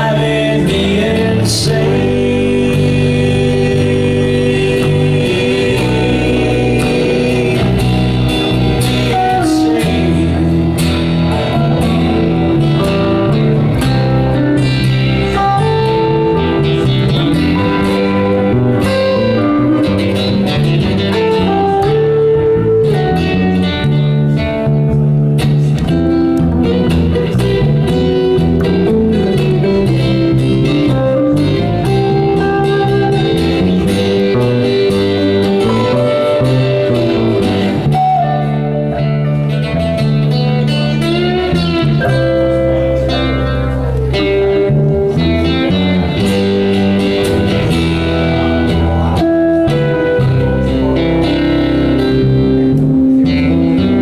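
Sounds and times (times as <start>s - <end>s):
lead electric guitar bending notes: 0.0s - 54.0s
live guitar band playing: 0.0s - 54.0s.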